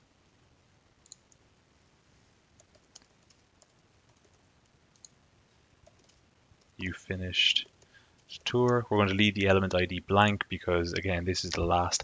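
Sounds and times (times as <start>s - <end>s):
computer keyboard clicks: 2.6s - 5.2s, 5.8s - 6.7s.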